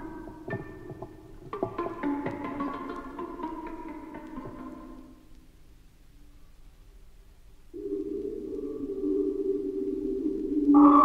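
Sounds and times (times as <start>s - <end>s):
sustained electronic tones: 7.7s - 11.0s.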